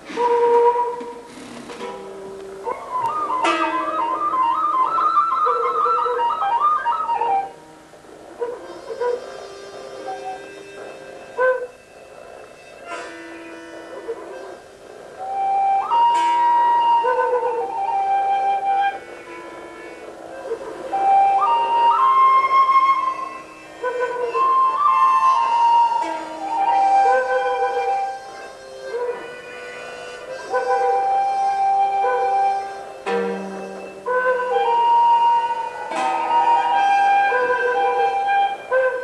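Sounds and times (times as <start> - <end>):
small flutes playing held notes: 0.0 - 39.0.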